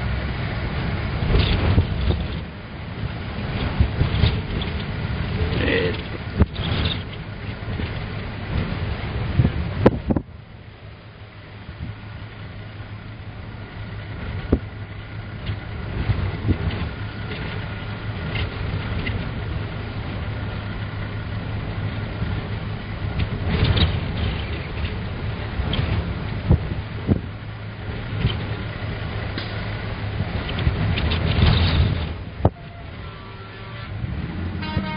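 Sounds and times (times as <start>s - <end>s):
gusting wind: 0.0s - 34.9s
vehicle engine idling: 0.0s - 34.9s.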